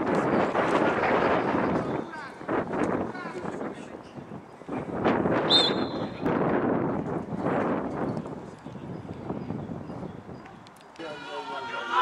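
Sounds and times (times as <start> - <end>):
wind buffeting microphone: 0.0 - 11.1
shrill whistle blast: 5.5 - 6.2.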